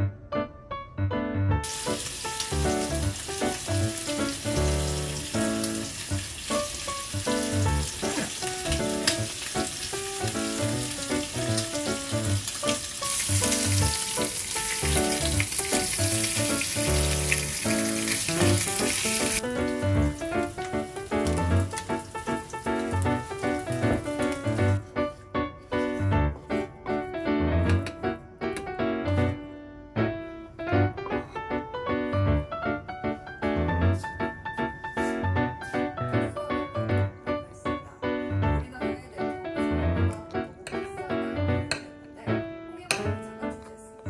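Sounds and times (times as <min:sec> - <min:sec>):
light background music: 0:00.0 - 0:44.0
food sizzling in a pan: 0:01.6 - 0:24.8.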